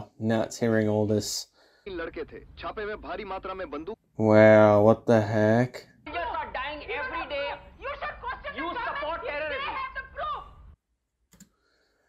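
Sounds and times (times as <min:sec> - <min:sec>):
computer clicks: 0:11.3 - 0:11.5.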